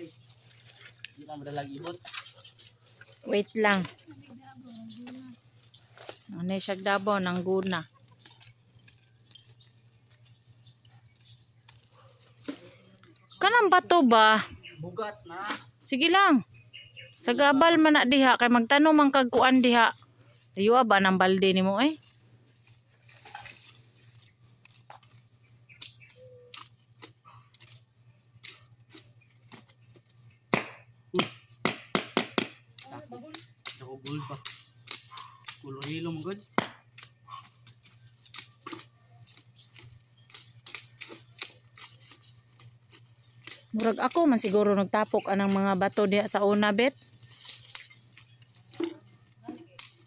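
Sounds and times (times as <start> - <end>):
hand tools scraping soil: 0.0 - 12.9, 22.0 - 30.4, 33.6 - 50.0
low steady hum: 0.0 - 50.0
hand tool chopping into soil: 30.5 - 42.7.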